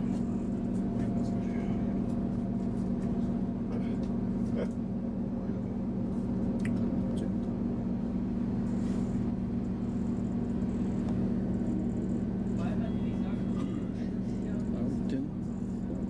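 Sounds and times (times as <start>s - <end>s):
train running gear drone: 0.0s - 16.0s.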